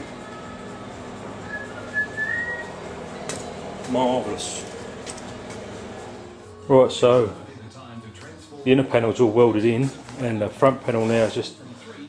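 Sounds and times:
person whistling: 1.4s - 2.8s.

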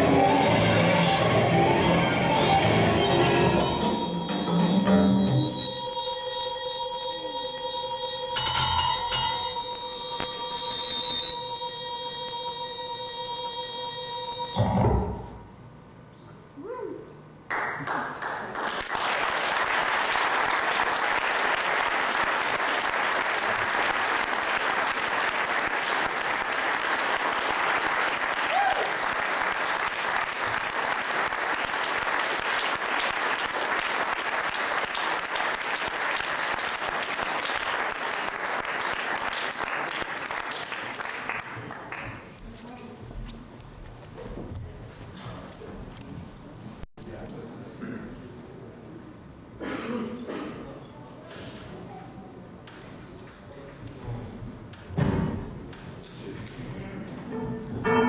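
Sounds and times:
electronic music held tones: 0.0s - 15.5s
audience applause: 17.5s - 42.2s.

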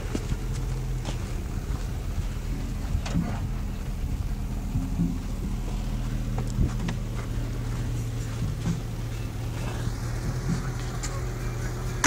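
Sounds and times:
off-road vehicle engine running: 0.0s - 12.0s.

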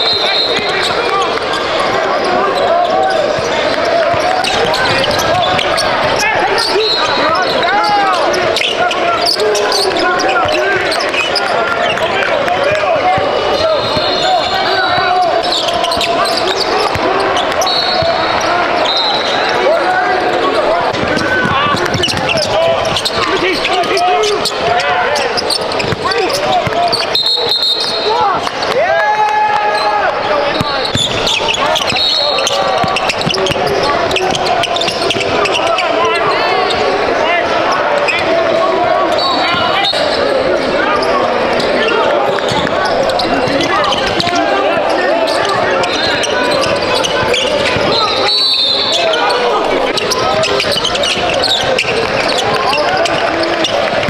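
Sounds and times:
chatter of voices: 0.0s - 54.0s
high-pitched shoe squeaks: 2.3s - 12.0s, 13.5s - 19.5s, 21.1s - 28.3s, 30.5s - 36.8s, 40.9s - 53.8s
basketball bouncing on court: 3.2s - 14.2s, 14.9s - 18.5s, 20.9s - 27.1s, 30.5s - 36.3s, 42.3s - 48.2s, 49.7s - 54.0s.

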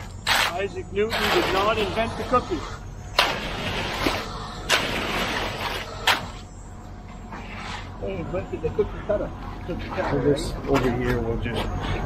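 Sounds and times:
wet concrete raked and scraped: 0.0s - 6.4s
machinery rumbling: 0.0s - 12.0s.

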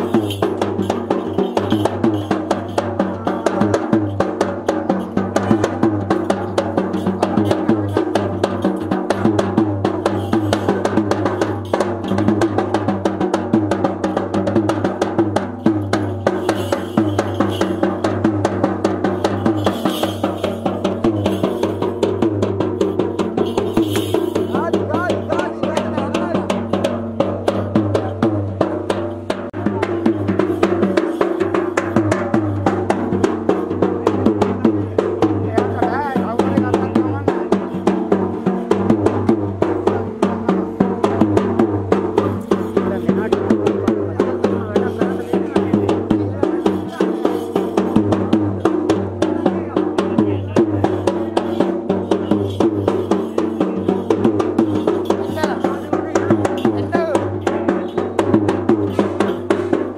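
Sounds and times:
drums in fast steady beat: 0.0s - 59.9s.

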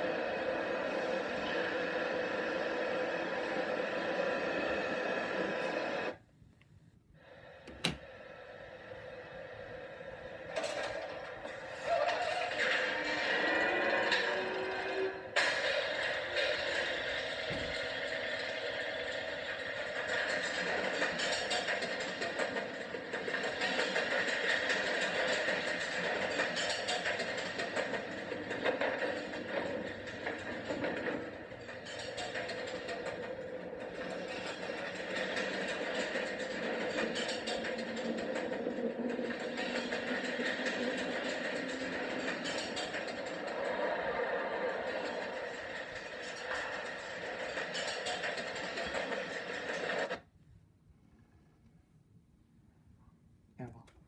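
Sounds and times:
ride rumbling and clattering on rails: 0.0s - 6.2s, 7.2s - 50.3s.

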